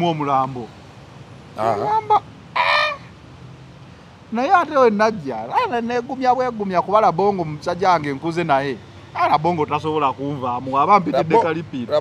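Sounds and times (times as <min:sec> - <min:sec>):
chicken squawking: 0:01.6 - 0:03.1, 0:05.5 - 0:05.8.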